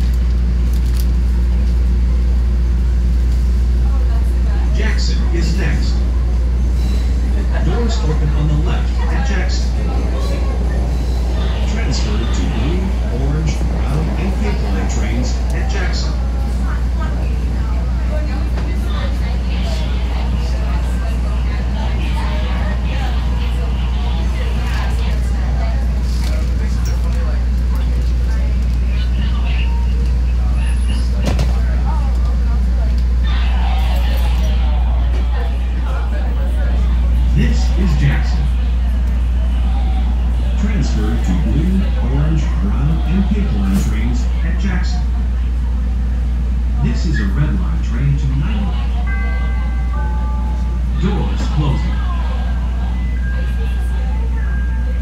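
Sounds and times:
subway train rumbling: 0.0 - 55.0
people talking: 3.7 - 6.4, 7.2 - 55.0.

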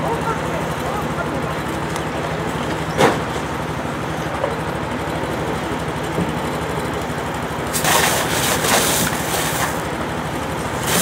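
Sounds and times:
engine running steadily: 0.0 - 11.0.

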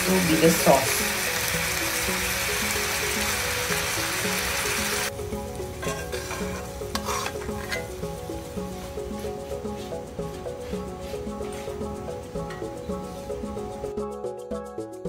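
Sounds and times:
fish sizzling in skillet: 0.0 - 13.9
light background music: 0.0 - 15.0.

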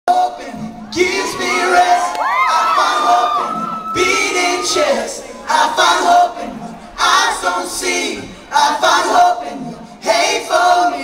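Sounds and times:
audience cheering and screaming: 0.8 - 6.8.

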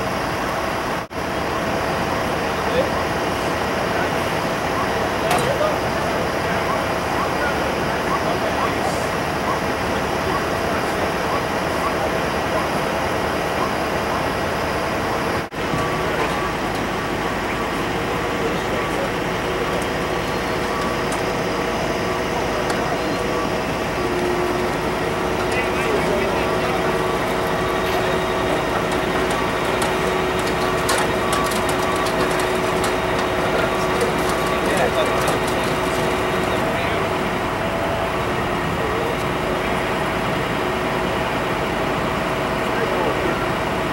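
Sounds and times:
large vehicle engine idling: 0.0 - 43.9.

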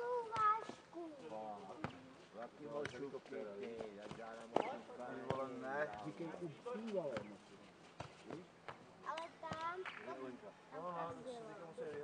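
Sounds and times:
football kicked and bouncing: 0.3 - 0.8, 2.7 - 6.2, 7.0 - 7.4, 8.0 - 8.8, 11.8 - 12.0.

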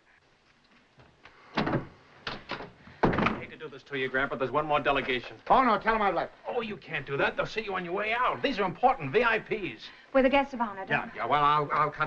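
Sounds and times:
door banging open: 1.5 - 3.5
man speaking: 3.4 - 10.0, 10.9 - 12.0.

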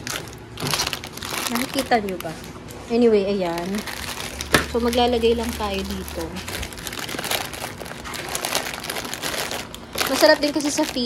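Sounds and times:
snack wrappers crinkling: 0.0 - 11.0.

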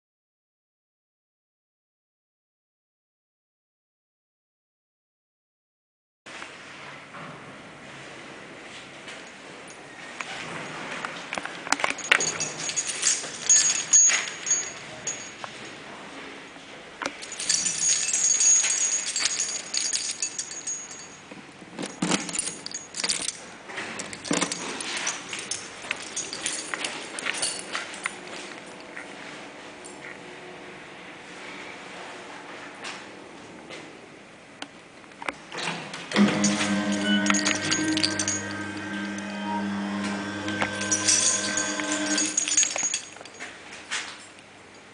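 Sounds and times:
electrical mains hum: 11.3 - 43.9
keys jangling: 11.8 - 15.8, 17.2 - 28.8, 36.2 - 44.9.

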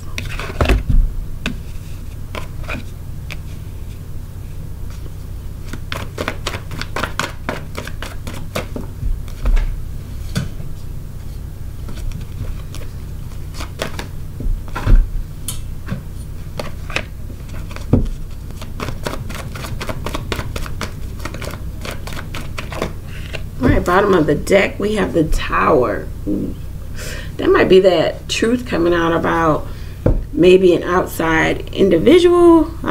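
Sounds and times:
low steady hum: 0.0 - 32.9
cards being shuffled: 1.4 - 4.0, 4.9 - 9.7, 11.8 - 15.0, 15.9 - 24.0.

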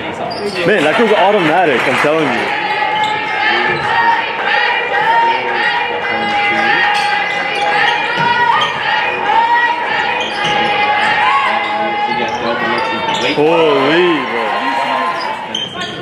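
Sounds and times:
sneakers squeaking on hardwood: 0.2 - 0.9, 2.9 - 4.2, 6.3 - 14.2, 15.1 - 16.0
players calling out: 0.2 - 16.0.

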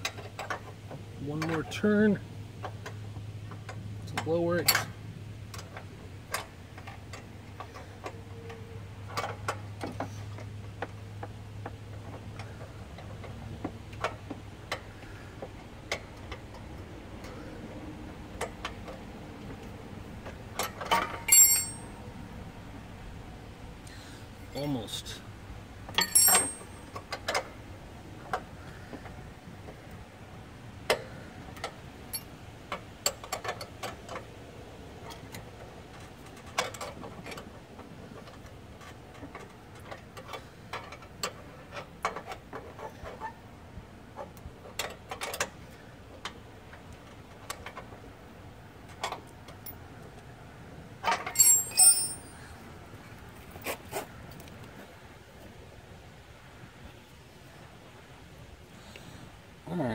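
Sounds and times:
wrenches clicking on metal bolt: 20.6 - 21.8, 26.0 - 27.1, 51.1 - 52.4.

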